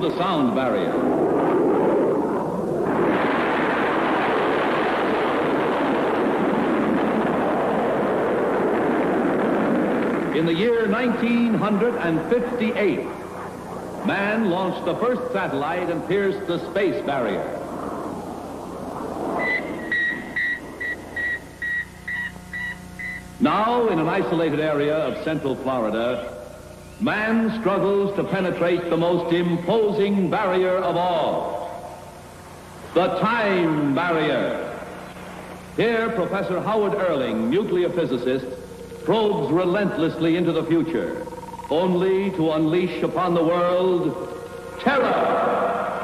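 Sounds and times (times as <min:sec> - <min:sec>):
jet aircraft roar: 0:00.0 - 0:46.0
low hum: 0:00.0 - 0:46.0
electronic high beeps: 0:19.4 - 0:23.3
warbling electronic sound: 0:37.0 - 0:46.0.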